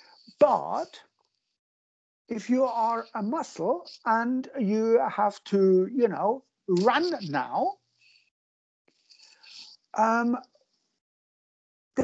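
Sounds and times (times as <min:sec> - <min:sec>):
breathy whisper-like voice: 0:09.1 - 0:10.2.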